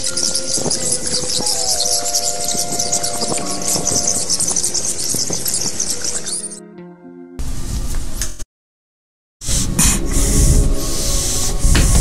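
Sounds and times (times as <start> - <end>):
bats squeaking: 0.0 - 6.6
eerie held tones: 0.0 - 7.1.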